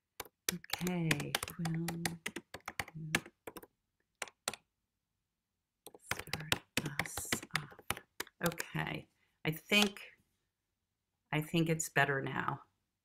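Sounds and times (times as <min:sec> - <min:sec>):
keyboard typing clicks: 0:00.2 - 0:04.7, 0:05.9 - 0:08.8.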